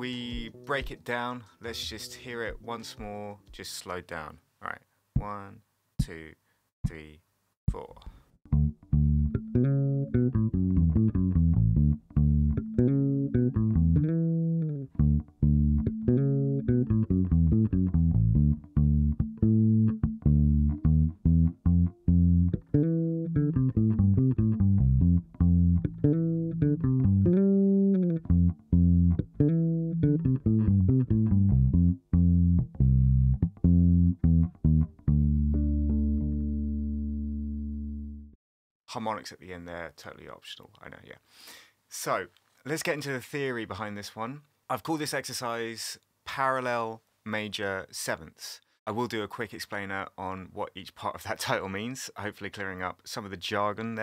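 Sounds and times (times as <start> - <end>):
fingerpicked electric bass: 8.4 - 38.4
ringing bass harmonics: 8.5 - 38.3.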